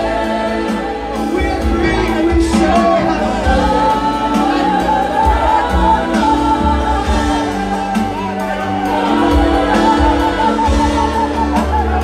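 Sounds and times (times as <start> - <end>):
held instrumental chords: 0.0 - 12.0
low bass: 0.0 - 12.0
people singing gospel: 0.0 - 12.0.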